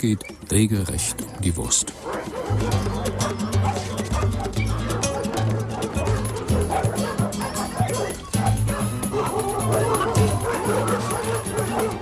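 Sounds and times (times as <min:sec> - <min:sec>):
dogs barking and yipping: 0:00.0 - 0:12.0
music with repeating bass line: 0:02.5 - 0:12.0.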